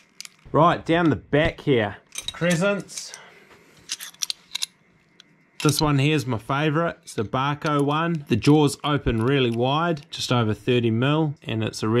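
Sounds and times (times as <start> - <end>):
metal wrenches clinking: 2.1 - 3.2, 3.9 - 4.7.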